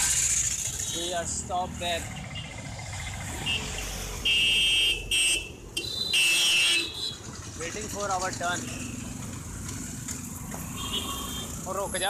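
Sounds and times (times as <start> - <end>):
street traffic rumbling: 0.0 - 12.0
vehicle horn: 3.4 - 7.2, 10.8 - 11.6.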